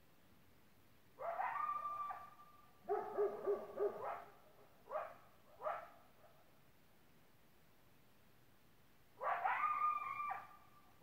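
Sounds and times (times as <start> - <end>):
coyote yips: 1.2 - 2.4, 9.2 - 10.6
dog barking: 1.2 - 6.4, 9.2 - 10.5.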